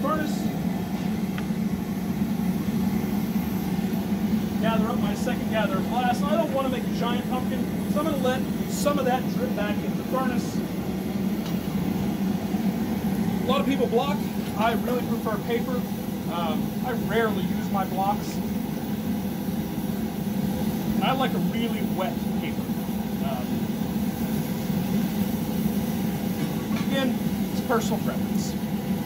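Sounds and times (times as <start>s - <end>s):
gas burner roaring: 0.0s - 29.0s.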